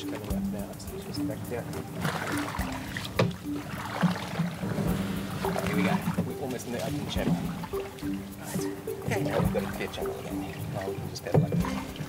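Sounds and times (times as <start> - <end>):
paddles in shallow water: 0.0 - 12.0.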